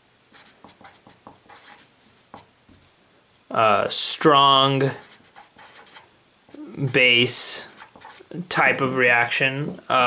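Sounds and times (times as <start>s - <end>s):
marker writing on paper: 0.3s - 2.5s, 4.9s - 8.3s.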